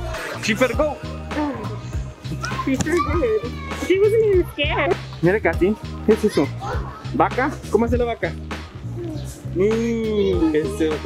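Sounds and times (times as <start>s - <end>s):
adult voices: 0.0s - 11.0s
background music with bass beat: 0.0s - 11.0s
toddler squealing: 8.9s - 9.5s.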